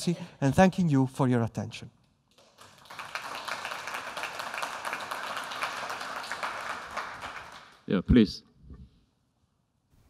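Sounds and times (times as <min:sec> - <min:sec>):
audience applauding: 0:02.4 - 0:07.8.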